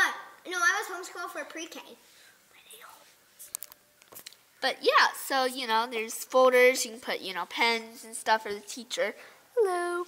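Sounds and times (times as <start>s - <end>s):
faint whisper: 2.5s - 3.5s.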